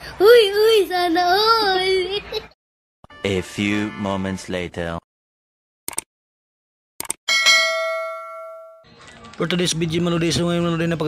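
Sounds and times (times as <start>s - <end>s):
bell ding: 7.3s - 8.9s.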